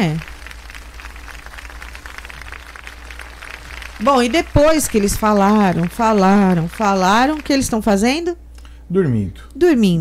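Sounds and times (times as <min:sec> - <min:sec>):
faint microphone hiss: 0:00.0 - 0:10.0
low electrical hum: 0:00.0 - 0:10.0.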